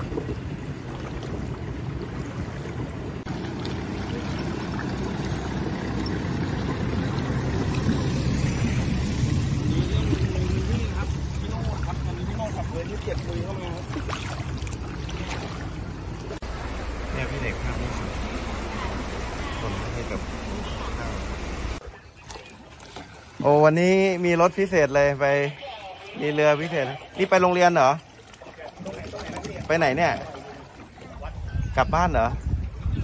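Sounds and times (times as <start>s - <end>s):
truck engine rumbling: 0.0s - 21.8s
water sloshing: 0.0s - 31.6s
floodwater: 0.0s - 33.0s.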